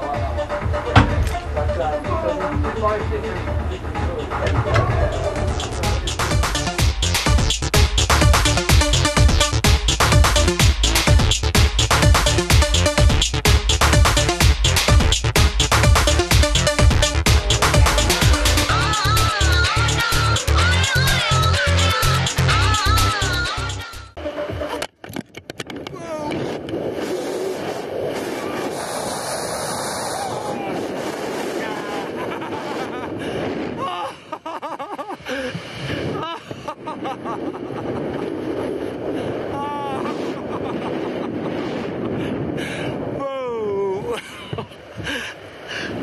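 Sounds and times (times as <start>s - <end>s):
wind rushing over microphone: 25.6s - 46.0s
person yelling: 39.5s - 40.2s, 43.2s - 44.2s.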